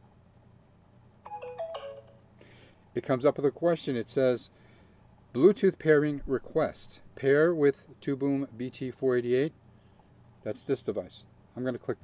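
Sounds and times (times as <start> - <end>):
phone notification chime: 1.3 - 2.2.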